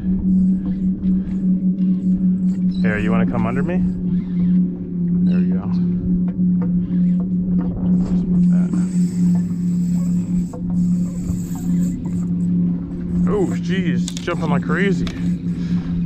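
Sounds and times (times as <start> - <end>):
loud mechanical hum: 0.0 - 16.0.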